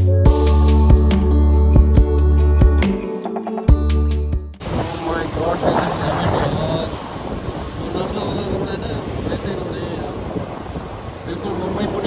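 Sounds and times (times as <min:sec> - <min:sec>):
road noise on wet tarmac: 0:04.6 - 0:12.0
wind buffeting microphone: 0:04.6 - 0:12.0.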